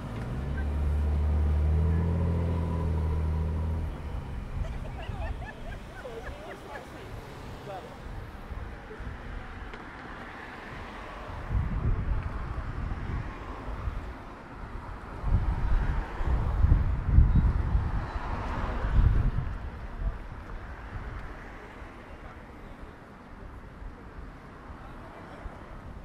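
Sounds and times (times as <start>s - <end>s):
street traffic hum: 0.0s - 26.0s
wind buffeting microphone: 2.6s - 9.7s, 10.7s - 21.4s.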